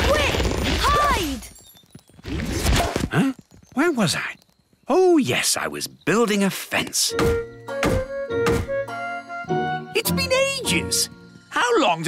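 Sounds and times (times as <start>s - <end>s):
background music: 7.0s - 12.0s
mallet striking wooden post: 7.2s - 8.8s.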